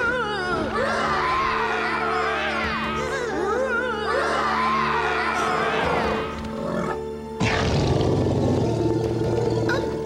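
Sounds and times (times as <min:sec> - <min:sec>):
orchestral background music: 0:00.0 - 0:10.0.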